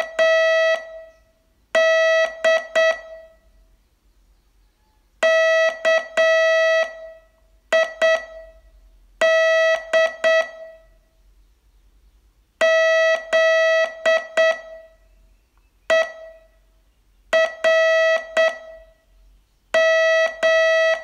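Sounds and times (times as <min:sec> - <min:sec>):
morse code beeps: 0:01.8 - 0:03.3, 0:05.2 - 0:07.1, 0:07.7 - 0:08.6, 0:12.6 - 0:15.0, 0:15.9 - 0:16.5, 0:17.3 - 0:18.9, 0:19.8 - 0:21.0.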